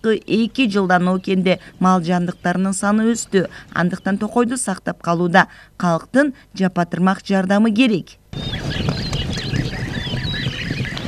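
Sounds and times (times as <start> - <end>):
birds chirping: 0.0 - 5.6, 8.3 - 11.0
horse hoofbeats on grass: 8.4 - 11.0.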